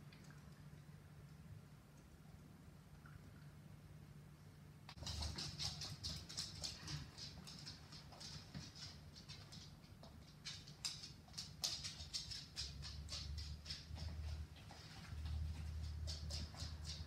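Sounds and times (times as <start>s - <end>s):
puppy claws clicking on floor: 4.9s - 17.0s.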